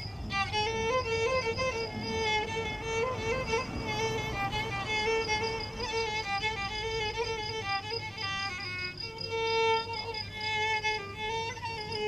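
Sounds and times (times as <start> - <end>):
violin melody: 0.0 - 12.0.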